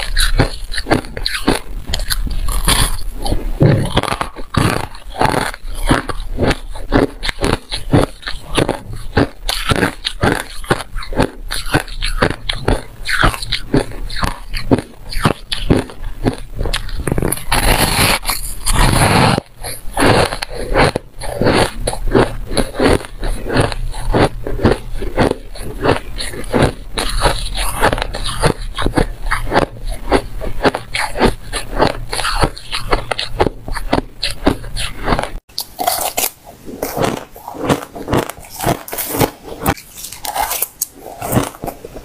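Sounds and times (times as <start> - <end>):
chewing crunchy frost: 0.0 - 42.0.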